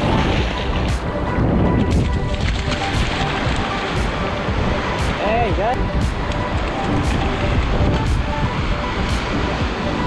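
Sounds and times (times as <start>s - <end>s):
faint background music: 0.0s - 10.0s
shallow surf washing: 0.0s - 10.0s
wind buffeting microphone: 0.0s - 10.0s.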